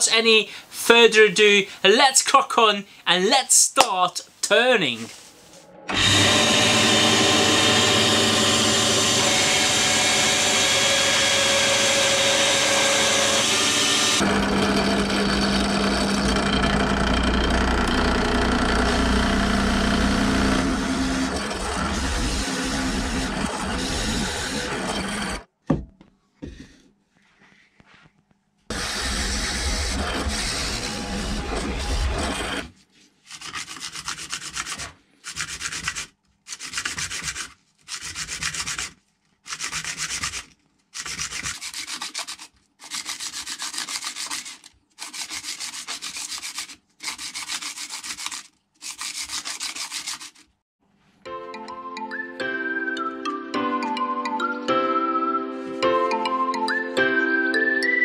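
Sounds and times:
bandsaw cutting: 5.9 - 25.5, 28.7 - 50.5
drill press running: 5.9 - 25.5, 28.7 - 32.7
metal tube rubbed on sandpaper: 33.3 - 50.4.

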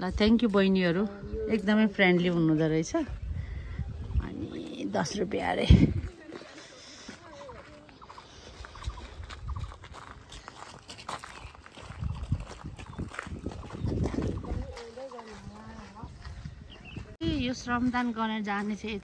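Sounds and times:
footsteps on gravel: 5.2 - 19.0
indistinct voices talking: 12.3 - 19.0.

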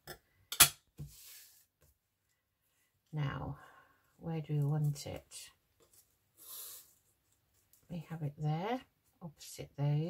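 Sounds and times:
soft rustle: 4.5 - 8.0.

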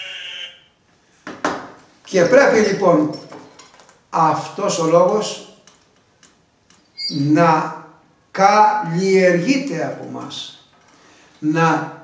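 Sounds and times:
steady high tone: 0.0 - 0.8.

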